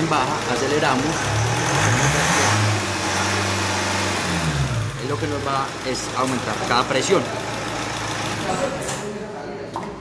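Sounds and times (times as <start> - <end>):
diesel engine revving: 0.0 - 8.6.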